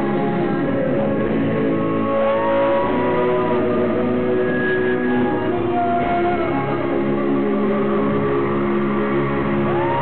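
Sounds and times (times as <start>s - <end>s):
live pop band and singers: 0.0s - 10.0s.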